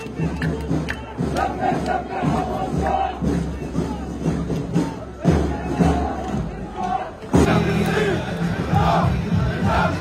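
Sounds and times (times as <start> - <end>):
crowd of marchers voices: 0.0 - 10.0
music playing: 0.0 - 10.0.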